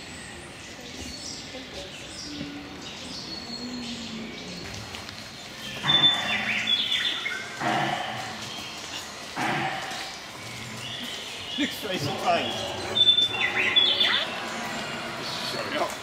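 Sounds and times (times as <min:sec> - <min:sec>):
faint birds chirping: 0:00.0 - 0:16.0
loud rough dinosaur calls: 0:07.6 - 0:08.6, 0:09.4 - 0:10.9.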